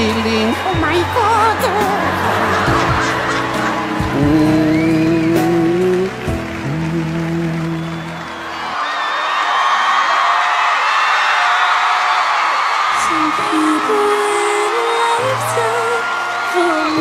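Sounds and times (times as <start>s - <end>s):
audience applauding and cheering: 0.0s - 17.0s.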